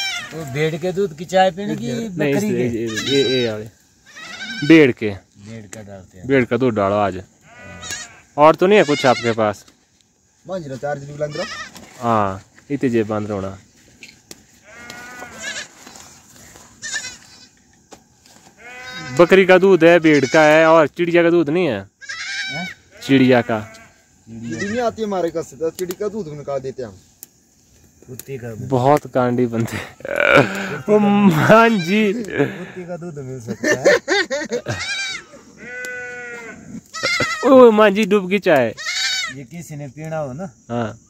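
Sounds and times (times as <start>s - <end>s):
livestock bleating: 0.0s - 0.6s, 2.5s - 4.9s, 7.4s - 9.4s, 11.2s - 11.8s, 14.6s - 16.2s, 16.8s - 17.5s, 18.6s - 20.8s, 22.0s - 25.0s, 30.0s - 32.7s, 34.7s - 37.6s, 38.8s - 39.4s.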